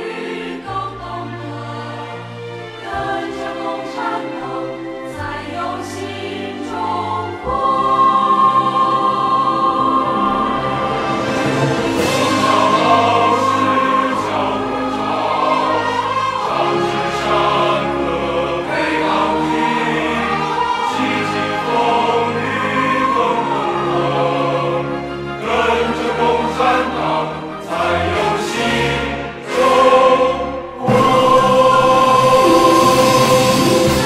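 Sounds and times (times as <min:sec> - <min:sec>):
instrumental accompaniment: 0:00.0 - 0:34.0
mixed choir singing: 0:00.0 - 0:34.0.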